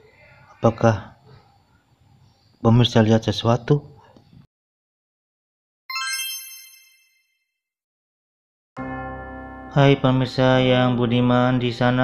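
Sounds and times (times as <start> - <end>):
bright bell-like chime: 5.9 - 7.6.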